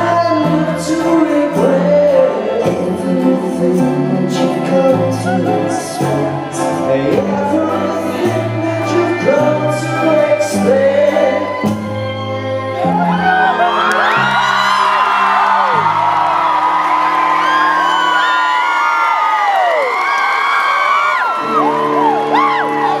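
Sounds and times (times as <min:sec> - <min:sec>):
live band holding chords: 0:00.0 - 0:23.0
crowd cheering and whistling: 0:11.2 - 0:23.0.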